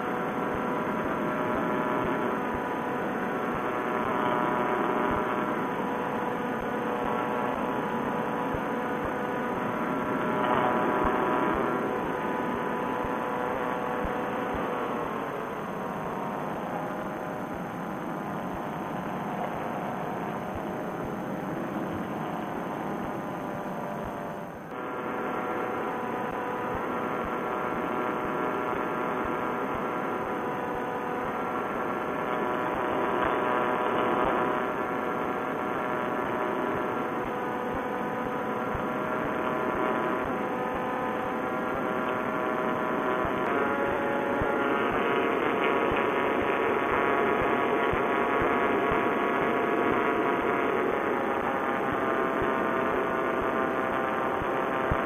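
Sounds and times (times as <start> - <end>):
paramotor engine droning: 0.0 - 55.0.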